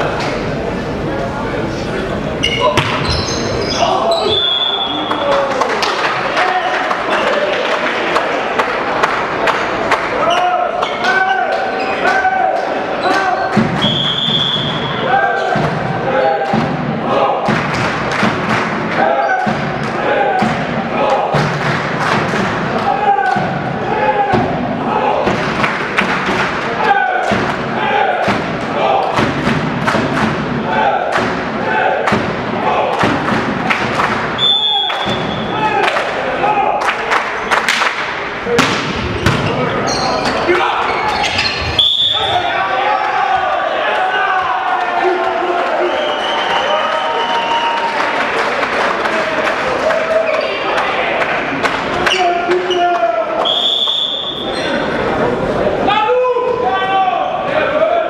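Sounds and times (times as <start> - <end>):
players and spectators chattering: 0.0 - 58.0
referee's whistle: 2.5 - 5.1, 13.8 - 15.0, 34.4 - 35.6, 41.2 - 42.4, 45.8 - 47.7, 53.4 - 54.8
volleyball thuds and slaps: 2.8 - 3.1, 37.6 - 39.6.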